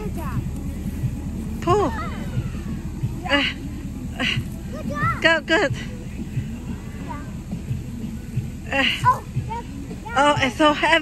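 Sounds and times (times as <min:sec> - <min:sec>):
steady low rumble: 0:00.0 - 0:11.0
young children calling: 0:01.8 - 0:05.5.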